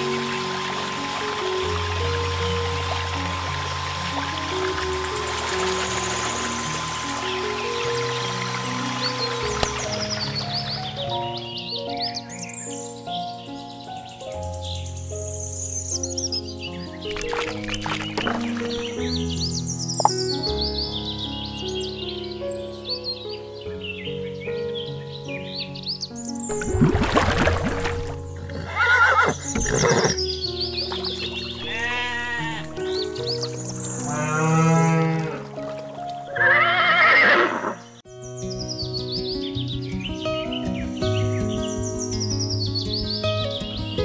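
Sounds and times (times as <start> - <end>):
background music: 0.0 - 44.0
farm animal calls: 28.5 - 37.8.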